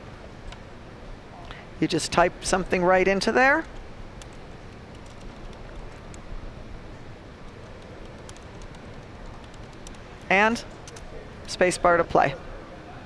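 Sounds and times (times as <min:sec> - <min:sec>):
keyboard key clicks: 0:07.5 - 0:10.0.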